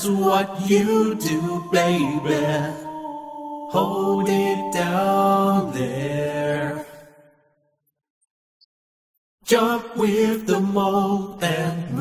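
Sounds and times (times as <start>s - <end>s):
person singing a low note: 1.1s - 6.9s.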